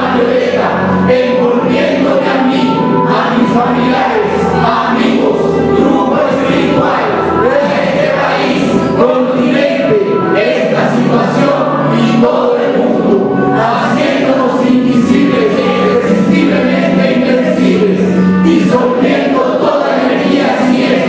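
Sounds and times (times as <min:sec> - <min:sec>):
choir singing held notes: 0:00.0 - 0:21.0.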